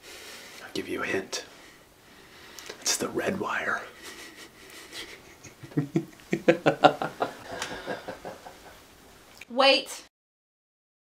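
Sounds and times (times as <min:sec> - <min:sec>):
man laughing: 0:04.0 - 0:08.8.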